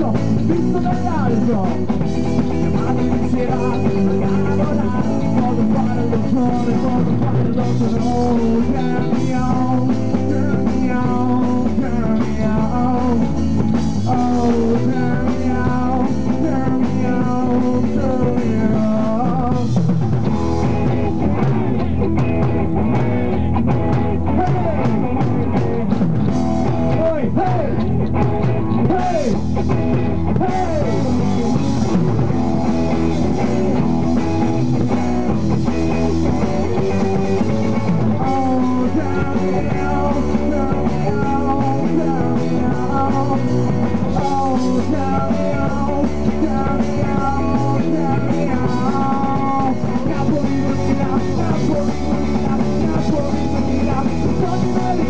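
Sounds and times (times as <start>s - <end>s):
drum kit: 0.0s - 55.0s
electric guitar: 0.0s - 55.0s.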